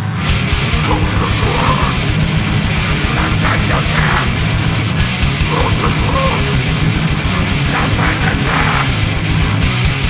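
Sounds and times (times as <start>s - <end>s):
distorted guitar and bass: 0.0s - 10.0s
grindcore band playing: 0.0s - 10.0s
fast pounding drums: 0.3s - 10.0s.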